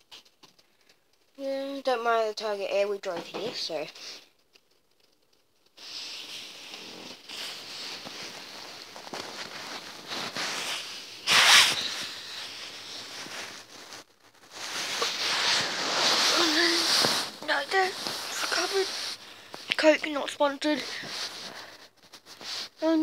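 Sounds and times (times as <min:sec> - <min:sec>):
bedding rubbing on microphone: 0:05.8 - 0:23.0.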